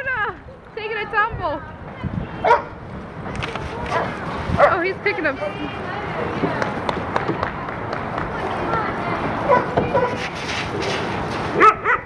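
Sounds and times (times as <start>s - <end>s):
dogs barking: 2.4s - 2.8s, 3.9s - 5.7s, 9.4s - 10.3s, 11.5s - 12.0s.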